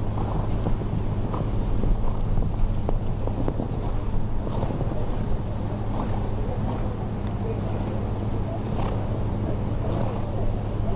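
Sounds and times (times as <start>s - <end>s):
wind rumble on microphone: 0.0s - 10.9s.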